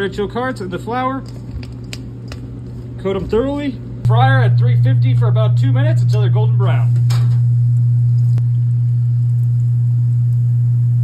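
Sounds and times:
loud steady low hum: 0:00.0 - 0:11.0.

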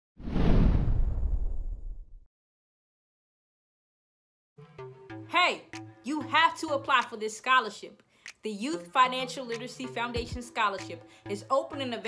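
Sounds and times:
rumbling whoosh: 0:00.2 - 0:02.2.

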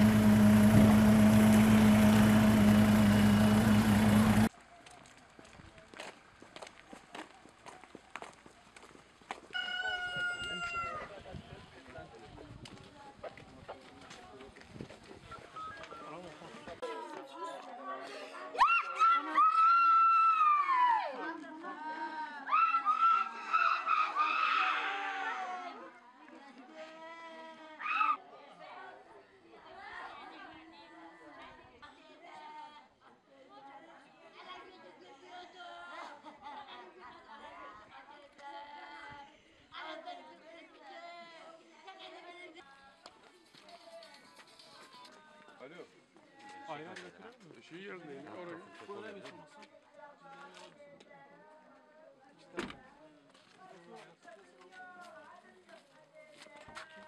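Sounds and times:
rooster crowing: 0:09.6 - 0:11.1.

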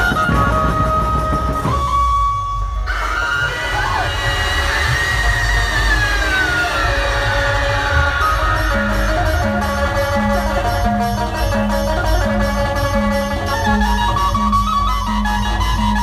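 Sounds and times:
heavy drums: 0:00.0 - 0:16.0
held pitched lead melody: 0:00.0 - 0:16.0.

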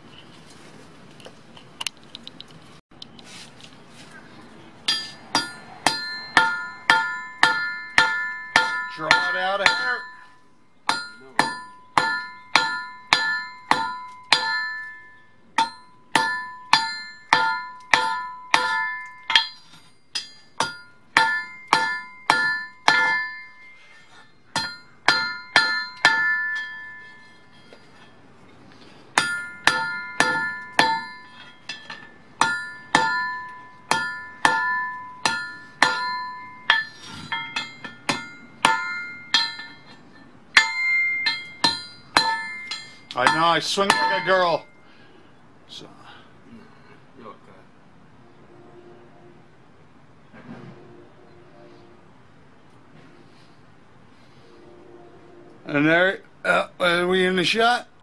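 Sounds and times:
hammer striking hot metal on anvil: 0:04.9 - 0:28.1, 0:29.1 - 0:44.7.

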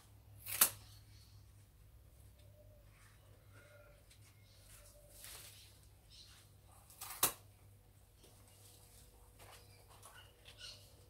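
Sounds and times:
leaf stalk snapping: 0:00.4 - 0:00.8, 0:07.0 - 0:07.4
leaves rustling: 0:04.7 - 0:06.4.

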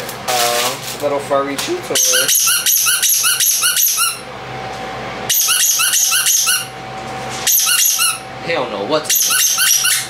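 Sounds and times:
squeaky dog toy squeaking: 0:02.0 - 0:04.3, 0:05.3 - 0:06.7, 0:07.5 - 0:08.2, 0:09.1 - 0:10.0.

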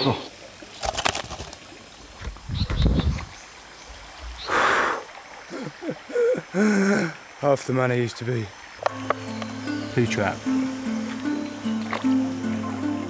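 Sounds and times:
man grunting and gasping: 0:04.5 - 0:07.2.

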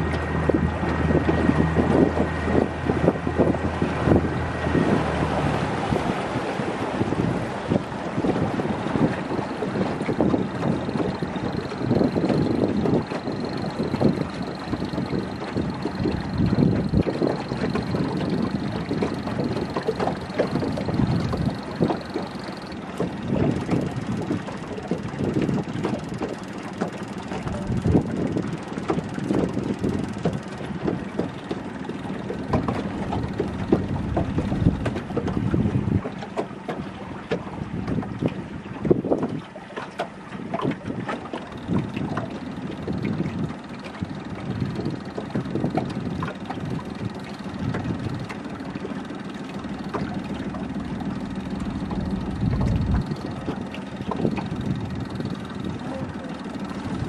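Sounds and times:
outboard motor idling: 0:00.0 - 0:57.0
wind buffeting microphone: 0:00.0 - 0:57.0.

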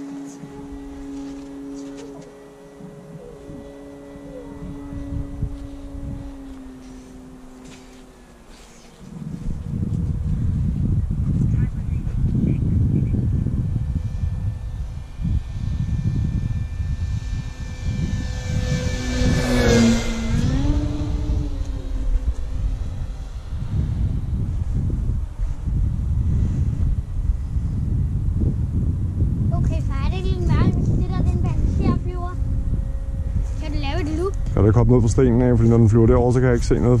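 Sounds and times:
model plane motor whine: 0:00.0 - 0:37.0
wind buffeting microphone: 0:00.0 - 0:37.0.

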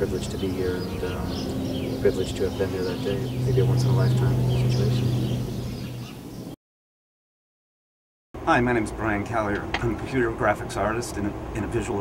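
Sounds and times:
steady low hum: 0:00.0 - 0:06.4.

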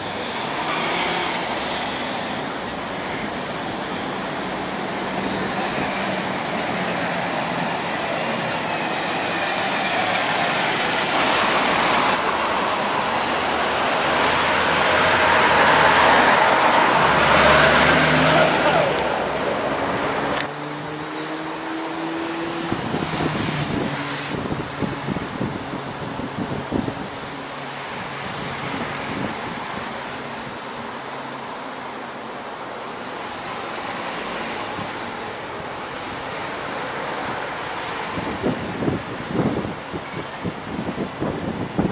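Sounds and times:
distant traffic noise: 0:00.0 - 0:41.9.

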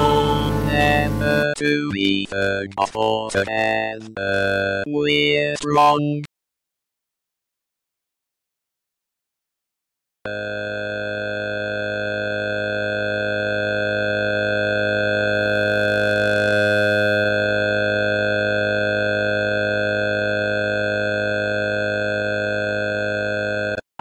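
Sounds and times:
sustained electronic chord: 0:00.0 - 0:02.7, 0:03.4 - 0:04.8, 0:10.3 - 0:23.8.

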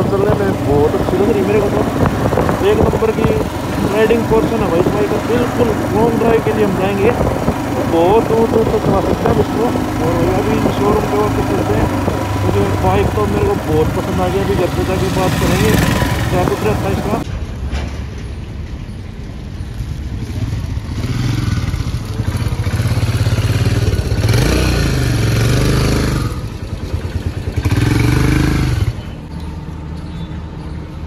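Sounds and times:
motorcycle engine idling and revving: 0:00.0 - 0:17.4, 0:18.4 - 0:31.0.

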